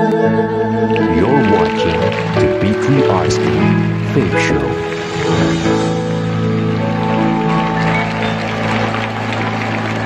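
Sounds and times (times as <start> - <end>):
crowd cheering and applauding: 0.8 - 10.0
band holding a chord: 1.7 - 9.7.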